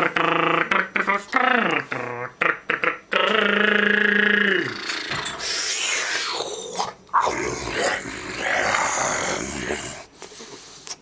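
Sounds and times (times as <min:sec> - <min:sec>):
breathy growl-like vocal sounds: 0:04.5 - 0:10.1.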